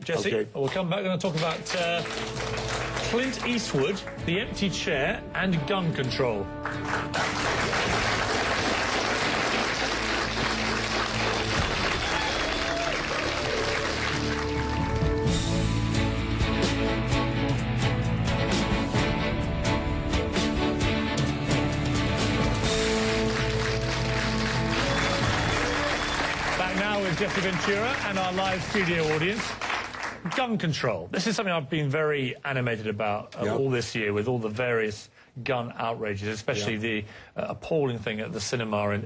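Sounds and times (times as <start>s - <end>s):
man speaking: 0.0s - 1.7s, 30.2s - 39.0s
talk show theme music: 0.0s - 39.0s
studio audience applauding: 0.6s - 4.4s, 6.6s - 15.6s, 22.6s - 30.9s.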